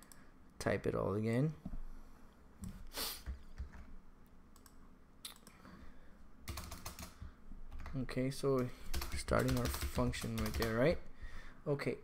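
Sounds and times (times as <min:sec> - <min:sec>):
computer keyboard keystrokes: 0:06.5 - 0:08.0, 0:08.9 - 0:10.9.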